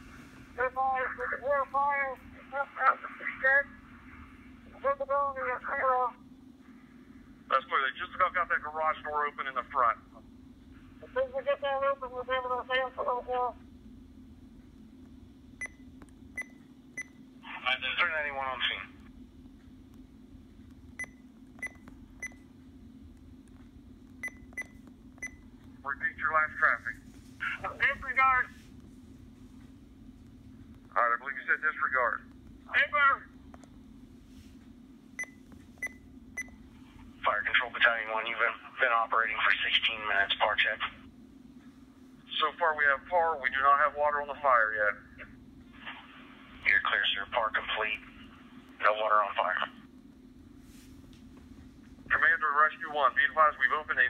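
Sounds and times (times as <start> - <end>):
steady low hum: 0.0 - 54.0
garbled two-way radio voices: 0.6 - 3.7, 17.4 - 19.0, 25.8 - 28.5, 30.9 - 33.2, 42.3 - 49.8, 52.1 - 54.0
electronic key beeps: 24.2 - 25.4.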